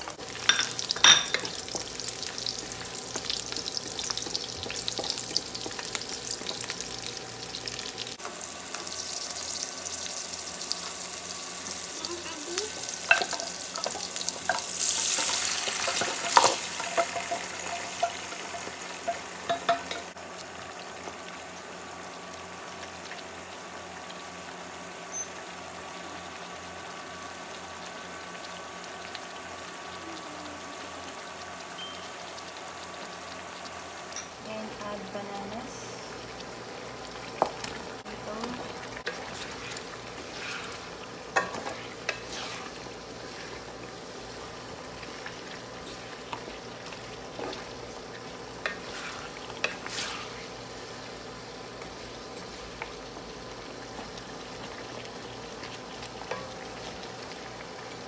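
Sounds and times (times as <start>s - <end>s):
garlic and onion sizzling in oil: 0.0s - 58.0s.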